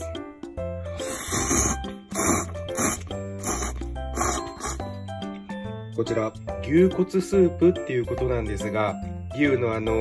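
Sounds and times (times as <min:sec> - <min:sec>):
background music: 0:00.0 - 0:10.0
person slurping noodles: 0:00.9 - 0:05.0.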